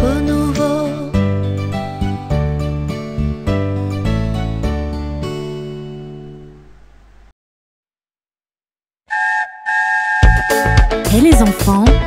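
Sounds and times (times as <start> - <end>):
train whistle blowing: 9.1 - 11.1
children's song with bass beat: 10.2 - 12.0.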